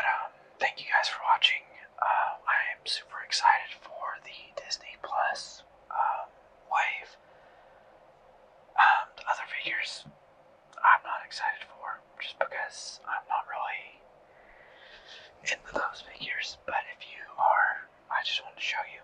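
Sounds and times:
person whispering: 0:00.0 - 0:07.2, 0:08.8 - 0:10.1, 0:10.8 - 0:14.0, 0:14.8 - 0:19.0.

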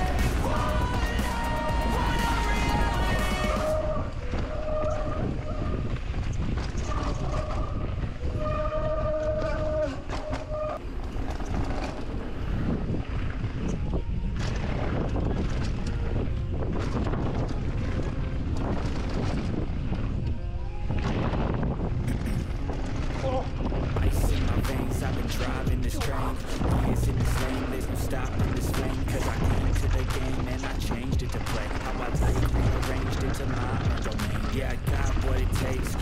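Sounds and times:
bike rumbling and rattling: 0:00.0 - 0:36.0
wind rushing over microphone: 0:00.0 - 0:36.0.

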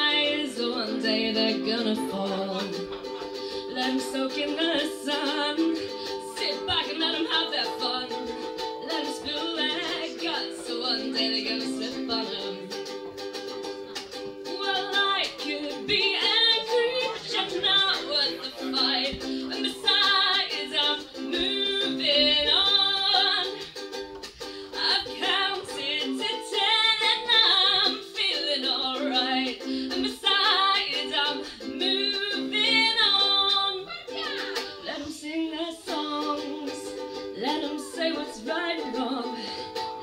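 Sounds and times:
woman singing: 0:00.0 - 0:12.9, 0:14.4 - 0:23.7, 0:24.6 - 0:40.0
ukulele strumming chords: 0:00.0 - 0:40.0.

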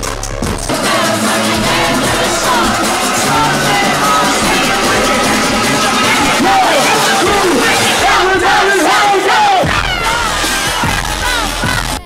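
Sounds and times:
crowd yelling and singing: 0:00.6 - 0:12.0
low rumble: 0:00.7 - 0:08.8.

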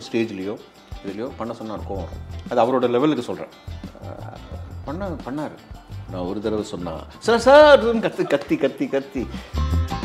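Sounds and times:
background music with low bass: 0:00.0 - 0:10.0
man speaking: 0:01.1 - 0:09.4.

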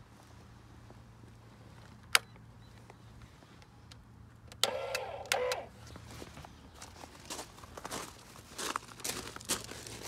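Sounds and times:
electric motor short bursts: 0:04.6 - 0:05.7.

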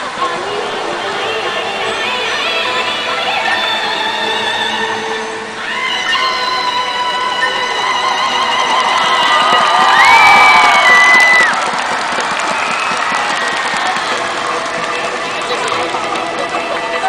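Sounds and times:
concert crowd cheering and shouting: 0:05.6 - 0:17.0.

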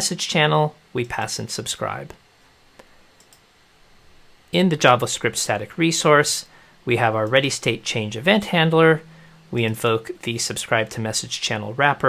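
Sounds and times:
computer mouse clicks: 0:02.8 - 0:03.4.

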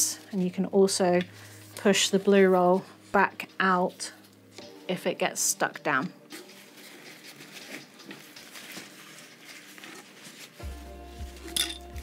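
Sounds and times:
paper towel rustling and scraping: 0:06.2 - 0:12.0.

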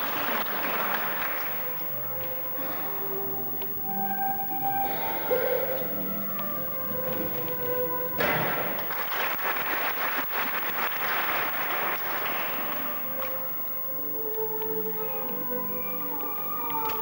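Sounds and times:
audience applause: 0:00.0 - 0:03.2, 0:08.2 - 0:14.2
background music: 0:00.0 - 0:17.0
gymnast landing thud: 0:08.2 - 0:09.0.

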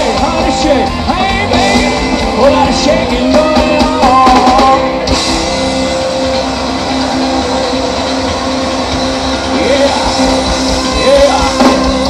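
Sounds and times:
rock band playing: 0:00.0 - 0:12.0.

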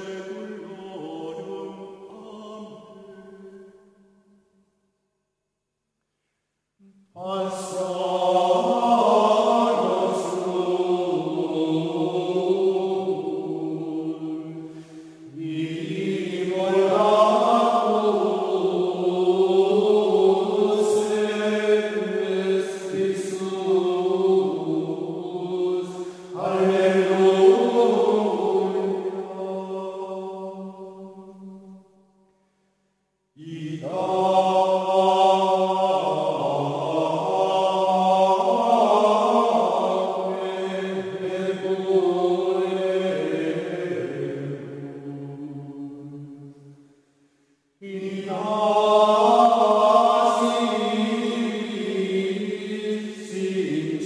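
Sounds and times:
slow chanted singing: 0:00.0 - 0:05.3, 0:06.0 - 0:54.0.

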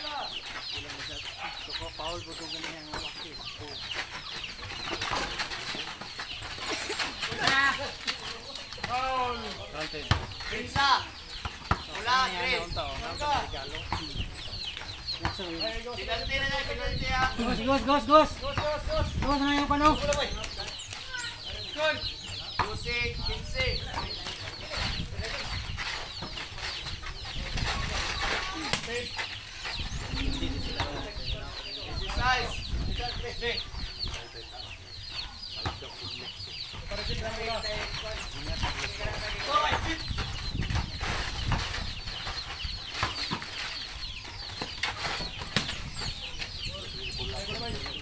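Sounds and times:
chickens clucking: 0:00.0 - 0:48.0
basketball dribbling on dirt: 0:00.1 - 0:21.5, 0:22.4 - 0:31.1, 0:35.5 - 0:46.6.

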